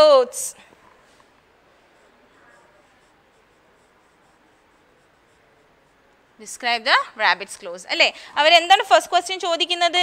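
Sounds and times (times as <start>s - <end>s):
marker writing on whiteboard: 0.7s - 10.0s.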